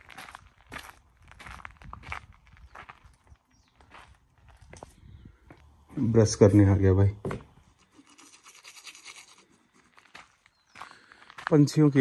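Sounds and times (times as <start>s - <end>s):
toothbrush scrubbing teeth: 7.8s - 9.9s.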